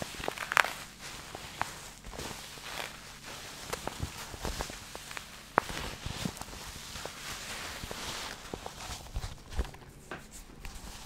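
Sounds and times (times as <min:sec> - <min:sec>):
fabric rustling against microphone: 0:00.0 - 0:11.0.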